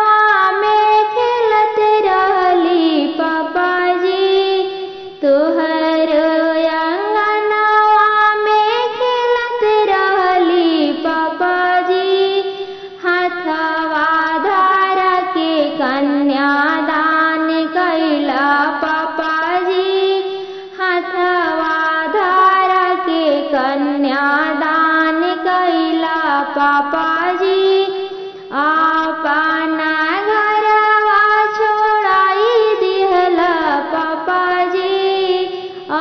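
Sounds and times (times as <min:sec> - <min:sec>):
woman singing: 0:00.0 - 0:36.0
singer breathing: 0:12.5 - 0:13.1, 0:20.3 - 0:20.8, 0:28.0 - 0:28.6.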